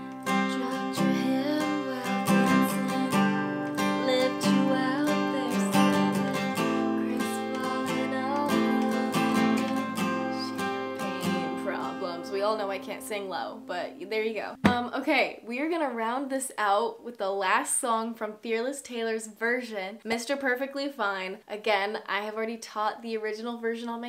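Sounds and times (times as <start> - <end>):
acoustic guitar strumming: 0.0 - 14.0
person singing softly: 0.3 - 12.2.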